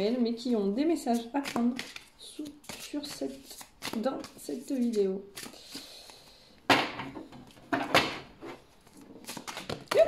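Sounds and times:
cards being shuffled: 1.1s - 6.3s, 8.8s - 10.0s.

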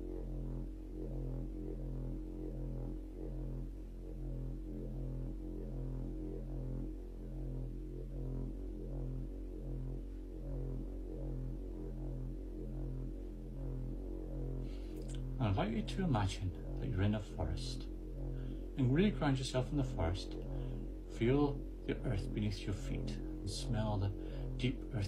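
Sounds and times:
electronic drone meditation music: 0.0s - 25.0s.

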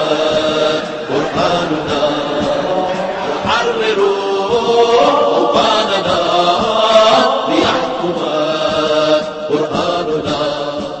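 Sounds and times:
chorus of voices chanting a song: 0.0s - 11.0s.

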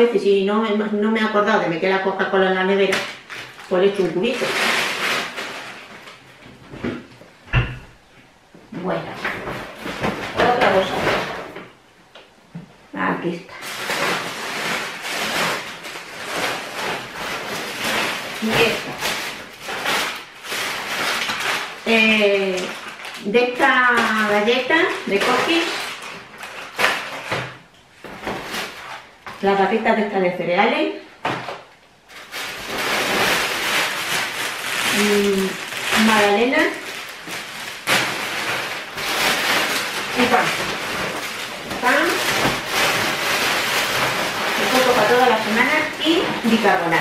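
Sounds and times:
shopping bag rustling: 2.6s - 6.4s, 8.9s - 11.6s, 13.5s - 29.6s, 31.4s - 47.0s.

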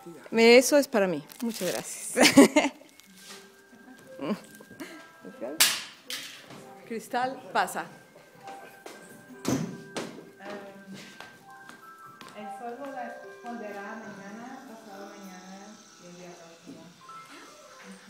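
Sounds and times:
music in a room: 2.8s - 14.8s.

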